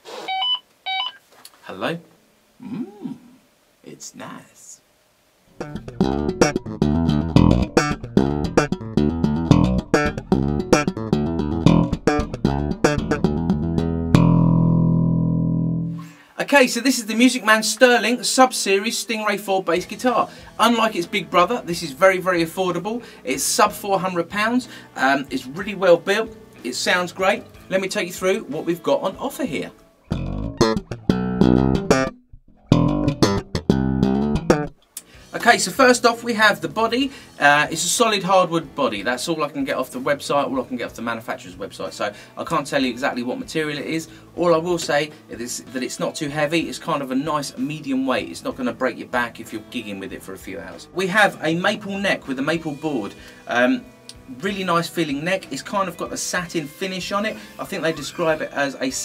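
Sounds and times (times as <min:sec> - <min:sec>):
electric bass plucked riff: 0:05.6 - 0:16.1, 0:30.0 - 0:34.8.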